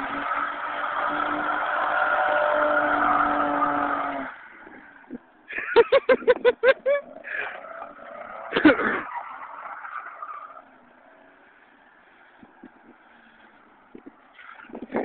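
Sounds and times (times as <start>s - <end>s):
car engine revving: 0.0s - 5.4s.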